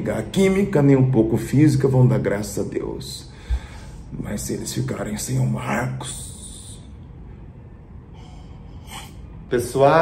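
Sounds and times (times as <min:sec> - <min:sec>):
low room noise: 0:00.0 - 0:10.0
person's breathy intake of air: 0:03.3 - 0:04.1.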